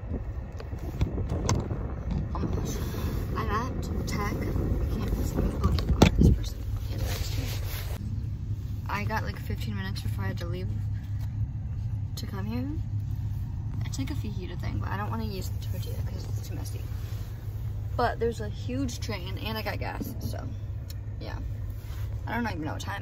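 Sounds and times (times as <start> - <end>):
car interior rumble: 0.0 - 23.0.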